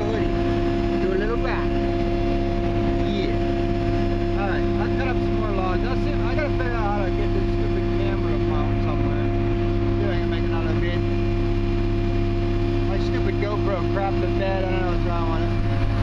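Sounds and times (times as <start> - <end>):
diesel engine running steadily: 0.0 - 16.0.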